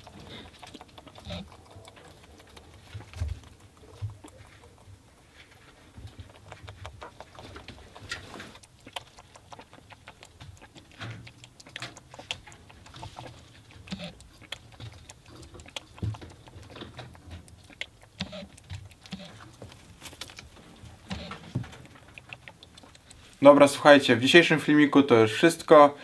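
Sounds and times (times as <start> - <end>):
rabbit lapping water: 0.0 - 25.9.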